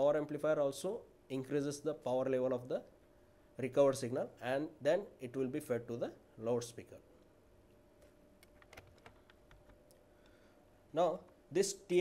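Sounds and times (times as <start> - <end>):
faint steady hum: 0.0 - 12.0
faint computer clicks: 8.0 - 10.0.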